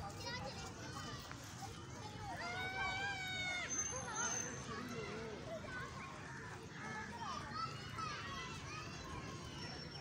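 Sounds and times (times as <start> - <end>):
distant children playing: 0.0 - 10.0.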